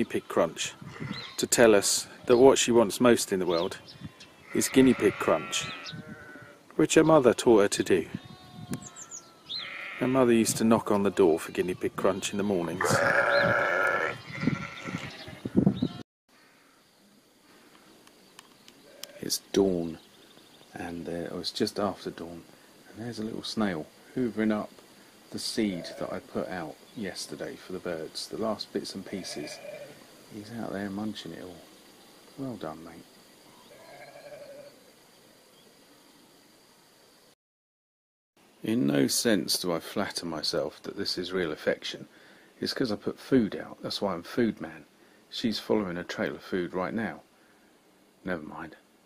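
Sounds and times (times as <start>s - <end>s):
faint hiss: 0.0s - 12.8s, 16.3s - 37.4s, 38.4s - 49.0s
sheep bleating: 0.8s - 1.4s, 4.0s - 6.6s, 8.2s - 10.3s, 11.0s - 16.0s, 18.9s - 19.3s, 25.7s - 26.1s, 29.1s - 30.0s, 33.7s - 34.7s.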